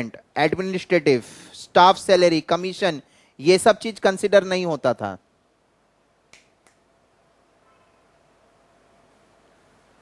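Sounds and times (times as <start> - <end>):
man speaking: 0.0 - 5.2.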